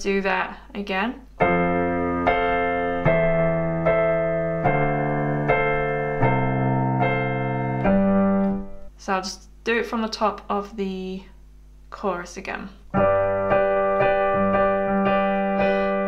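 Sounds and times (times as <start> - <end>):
piano chords: 1.3 - 9.0, 12.9 - 16.0.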